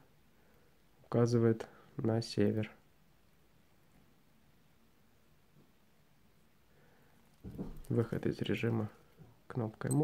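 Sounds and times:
man speaking: 7.9 - 10.0.

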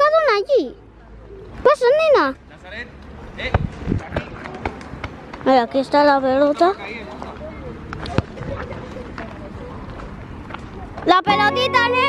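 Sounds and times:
faint distant voices: 0.0 - 12.0.

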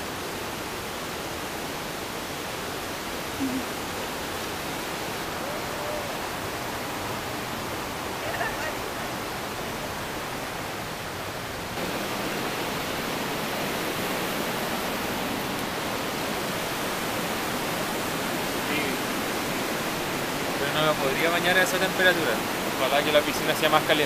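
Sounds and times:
mountain river rushing: 0.0 - 24.0.

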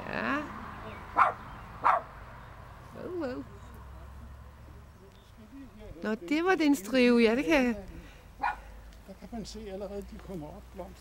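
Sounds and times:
dog barking: 1.2 - 2.1, 8.4 - 8.7.

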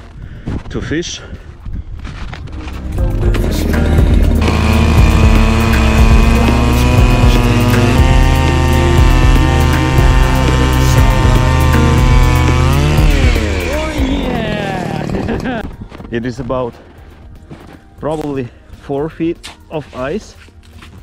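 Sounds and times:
background music: 2.4 - 21.0
ice auger engine drilling: 4.0 - 15.7.

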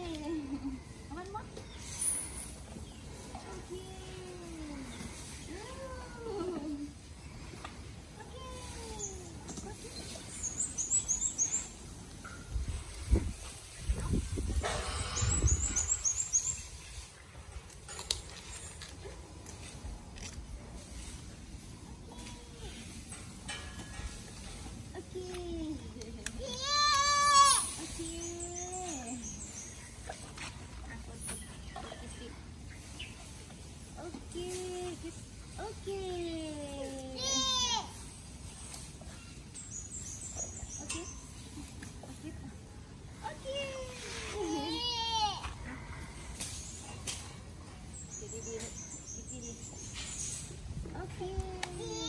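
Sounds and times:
outdoor background noise: 0.0 - 52.0.

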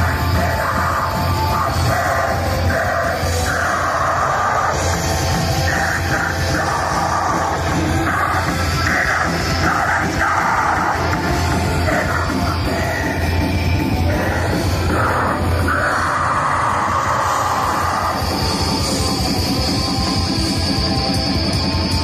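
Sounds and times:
bass guitar: 0.0 - 22.0
distorted electric guitars: 0.0 - 22.0
drums: 0.0 - 22.0.

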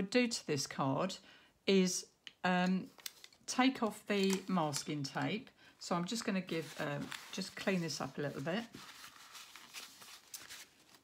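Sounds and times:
paper towel rustling: 6.4 - 11.0.

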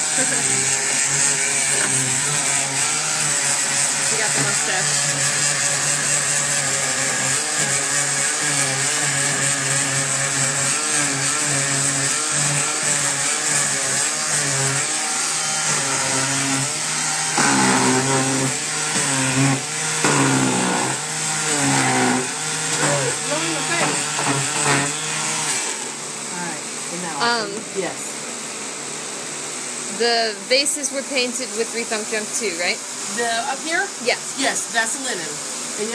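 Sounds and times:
electric sander sanding wood: 0.0 - 35.9.

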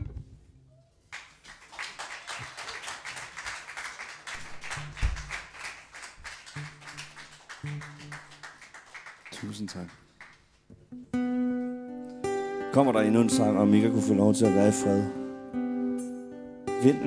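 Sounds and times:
audience applauding: 1.1 - 10.7.

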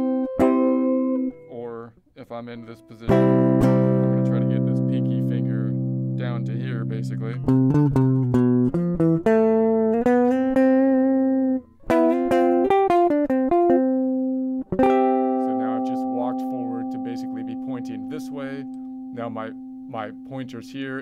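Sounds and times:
electric guitar picking notes: 0.0 - 1.6, 2.5 - 21.0.

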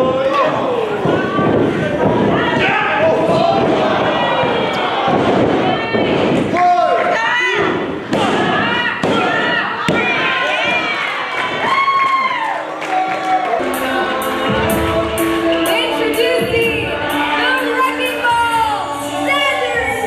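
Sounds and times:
crowd shouting and yelling: 0.0 - 20.0.

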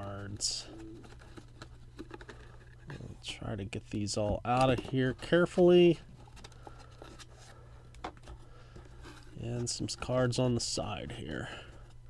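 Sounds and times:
low steady hum: 0.0 - 12.0
cards rubbing against cardboard box: 0.2 - 3.1.

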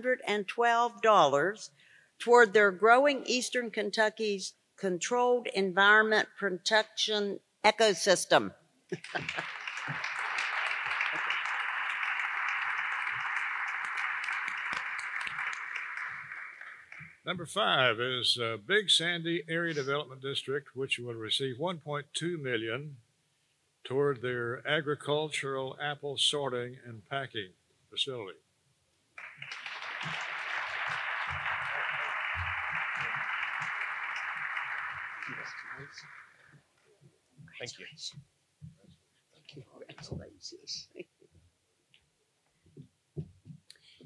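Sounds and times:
audience applauding: 9.0 - 17.3, 29.2 - 36.5.

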